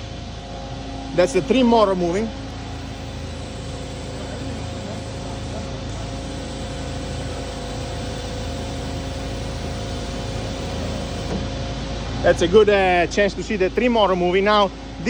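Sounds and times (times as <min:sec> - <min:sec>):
electric trim motor humming: 0:02.5 - 0:11.4.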